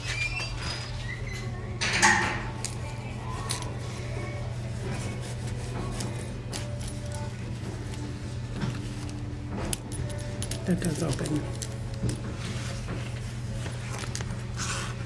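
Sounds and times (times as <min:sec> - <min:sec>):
faint background music: 0:00.0 - 0:15.0.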